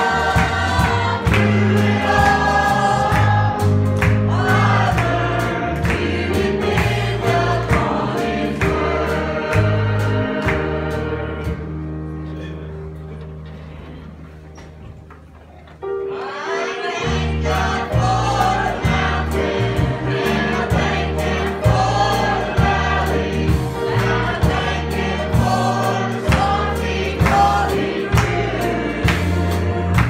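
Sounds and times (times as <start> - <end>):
choir singing a gospel hymn: 0.0 - 12.5, 15.9 - 30.0
church band playing: 0.0 - 30.0.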